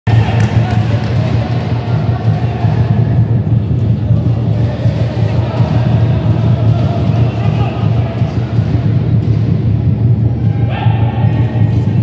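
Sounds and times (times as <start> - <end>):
music: 0.1 - 12.0.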